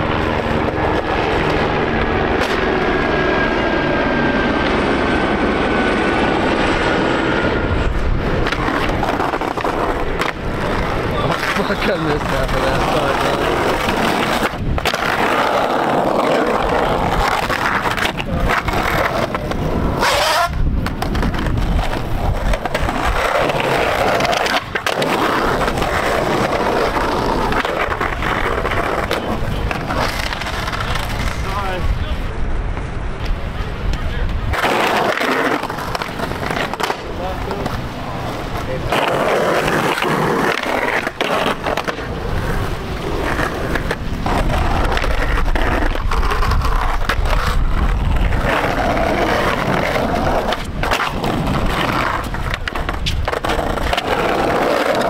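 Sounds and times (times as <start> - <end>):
skateboard clacking on ground: 0.0 - 3.6, 7.8 - 31.8, 32.7 - 55.0
skateboard trucks grinding curb: 0.0 - 32.3, 33.3 - 55.0
skateboard wheels rolling on concrete: 0.0 - 55.0.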